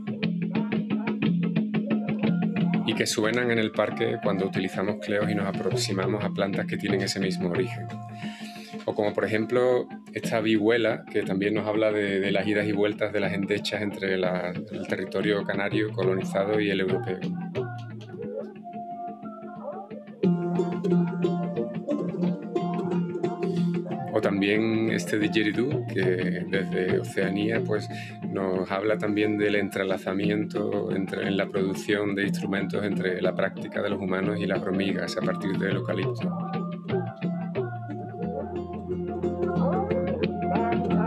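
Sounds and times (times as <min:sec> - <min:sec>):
plucked string music: 0:00.0 - 0:06.2, 0:20.2 - 0:28.1, 0:34.6 - 0:41.0
man's voice: 0:01.9 - 0:18.0, 0:23.5 - 0:41.0.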